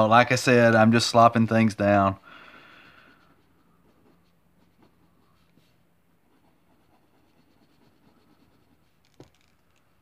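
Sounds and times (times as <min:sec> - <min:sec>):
pencil scratching on paper: 0:01.8 - 0:09.2.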